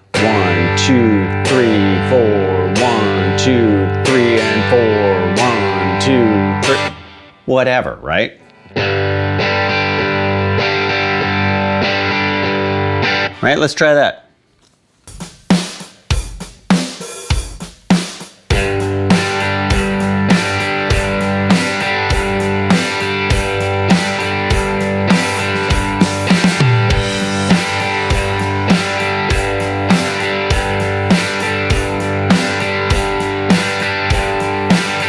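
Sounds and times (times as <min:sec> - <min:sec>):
drum groove: 0:00.0 - 0:07.0, 0:15.0 - 0:35.0
electric guitar strumming: 0:00.0 - 0:13.6, 0:18.5 - 0:35.0.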